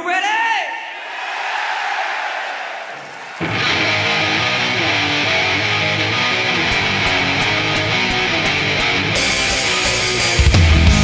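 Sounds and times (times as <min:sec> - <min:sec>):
crowd cheering: 0:00.8 - 0:11.0
electric guitar riff: 0:03.4 - 0:11.0.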